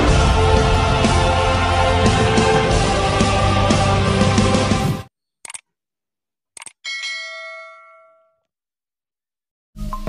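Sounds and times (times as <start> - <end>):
bright bell chime: 6.9 - 8.4.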